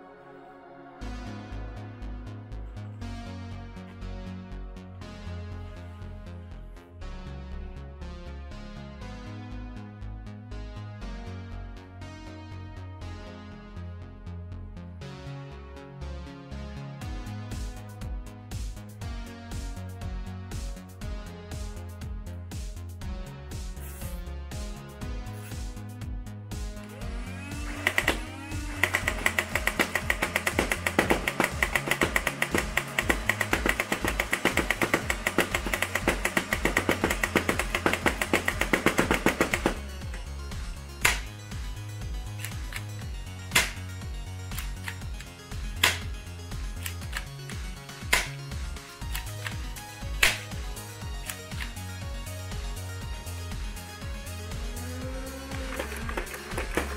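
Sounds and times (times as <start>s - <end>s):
background music: 0.0s - 56.9s
foam dart blaster firing: 27.0s - 40.1s, 41.0s - 41.4s, 43.5s - 43.9s, 45.8s - 46.2s.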